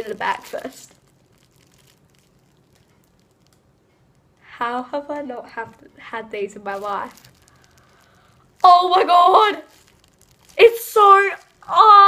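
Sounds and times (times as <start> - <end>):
plastic bag crinkling: 0.0 - 5.8, 6.4 - 12.0.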